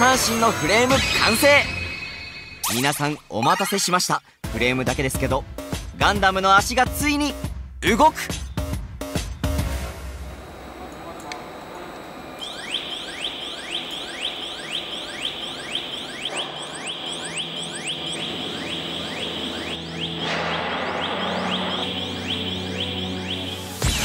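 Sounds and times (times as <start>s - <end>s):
rising electronic chirps: 12.2s - 24.0s.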